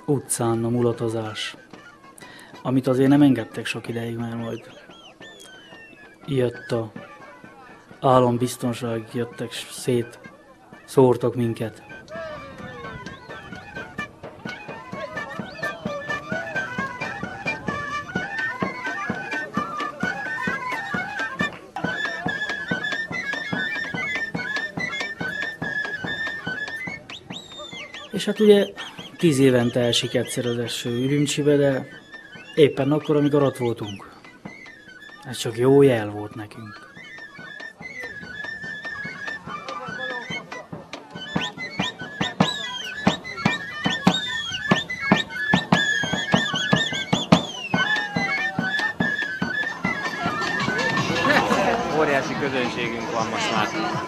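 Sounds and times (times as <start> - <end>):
shrill shawm melody: 0.0 - 54.0
steady drumbeat: 2.5 - 36.8, 37.7 - 54.0
rapid drum strokes: 45.6 - 54.0
high ornamented melody: 46.6 - 54.0.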